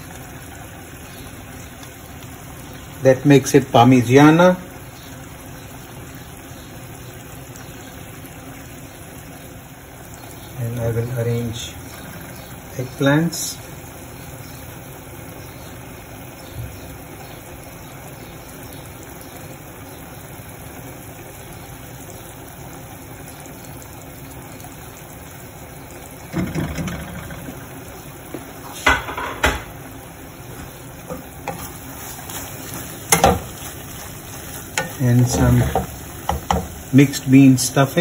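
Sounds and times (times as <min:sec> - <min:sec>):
faint sizzling in pan: 0:00.0 - 0:38.0
utensils knocking on pan: 0:28.8 - 0:29.8, 0:33.1 - 0:33.6, 0:34.8 - 0:36.8.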